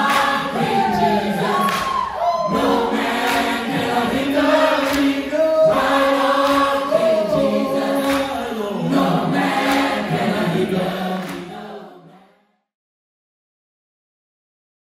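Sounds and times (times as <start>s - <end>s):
choir singing held notes: 0.0s - 12.3s.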